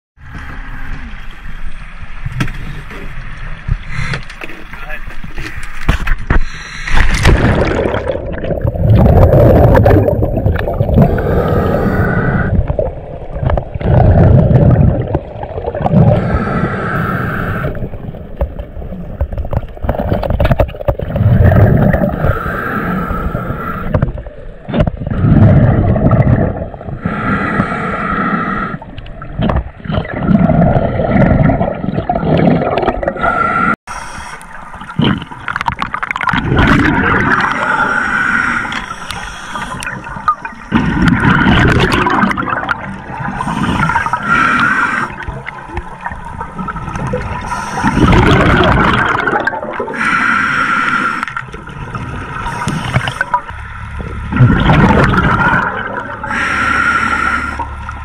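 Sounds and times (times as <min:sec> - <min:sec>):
gurgling exhaled bubbles: 0:06.9 - 0:33.8, 0:34.7 - 0:50.2, 0:51.2 - 0:56.9
regulator hissing inhalations: 0:16.2 - 0:17.8, 0:33.2 - 0:34.6, 0:37.6 - 0:40.6, 0:43.4 - 0:45.2, 0:47.5 - 0:48.1, 0:49.9 - 0:51.3, 0:56.3 - 0:57.7.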